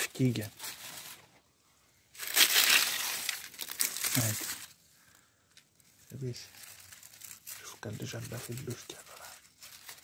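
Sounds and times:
dry leaves crunching: 2.2s - 4.8s, 6.1s - 10.0s.

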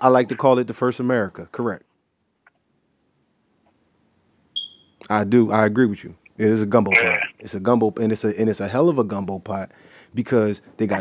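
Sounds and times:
short high-pitched electronic beep: 4.6s - 5.0s.

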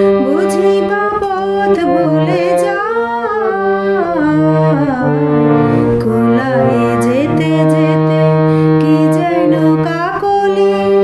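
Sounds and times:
harmonium slow melody: 0.0s - 11.0s
person singing: 0.0s - 11.0s.

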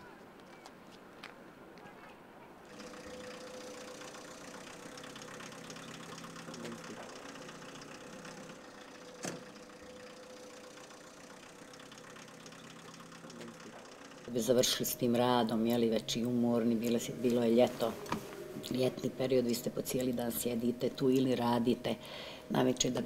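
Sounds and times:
faint machine running: 2.6s - 23.0s.

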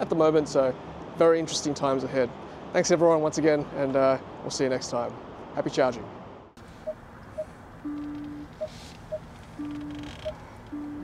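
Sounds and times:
low electronic warning tone: 6.8s - 11.0s.

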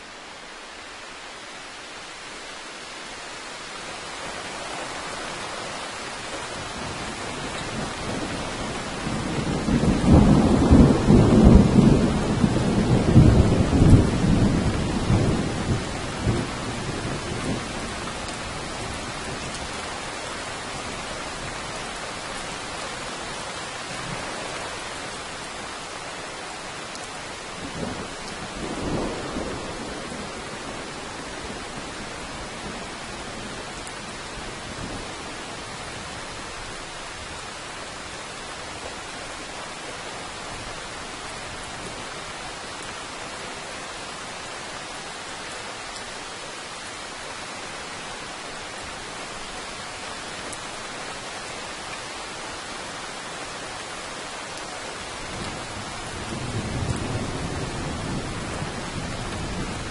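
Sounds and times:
steady rain: 0.0s - 59.9s
thunder rumbling: 6.6s - 19.5s, 27.6s - 33.0s, 55.3s - 59.9s.

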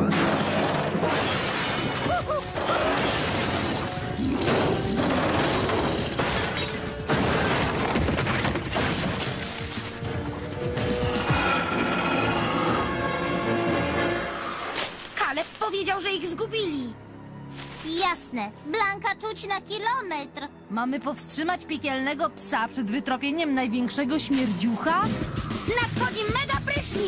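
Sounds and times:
cartoon crashing and smashing: 0.0s - 10.0s
background music: 0.0s - 27.0s.

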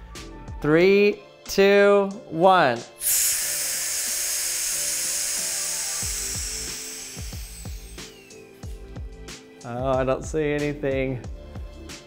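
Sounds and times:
air hissing through valve: 3.0s - 8.7s.

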